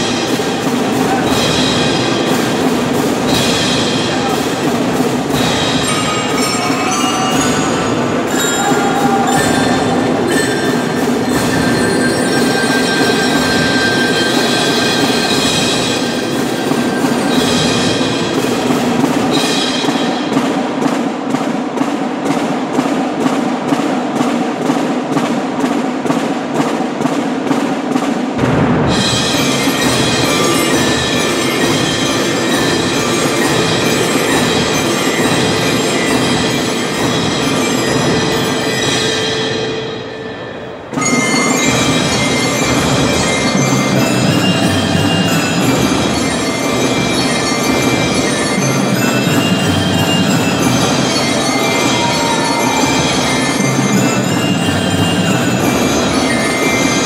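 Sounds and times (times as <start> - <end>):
percussion ensemble playing: 0.0 - 57.0
rapid mallet strokes: 0.0 - 57.0.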